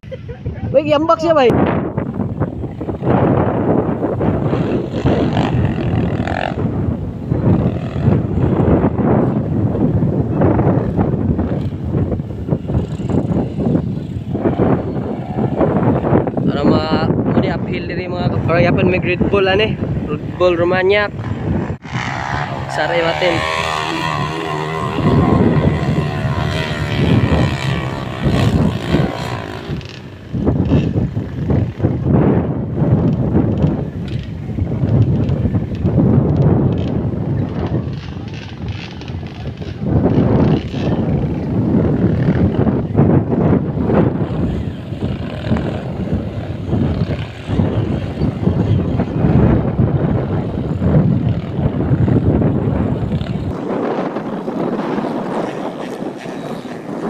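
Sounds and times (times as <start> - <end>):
motorcycle engines revving: 0.0 - 57.0.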